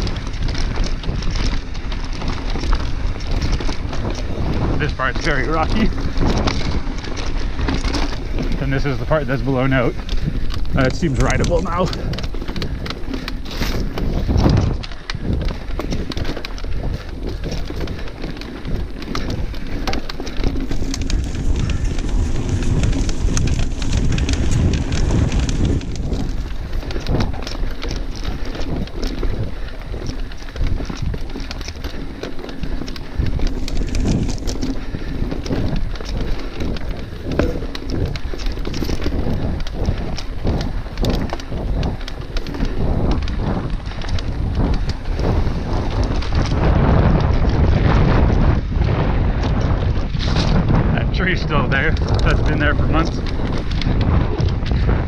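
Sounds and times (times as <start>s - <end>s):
bike rattles and knocks: 0.0s - 55.0s
bike tyres on dirt: 0.0s - 55.0s.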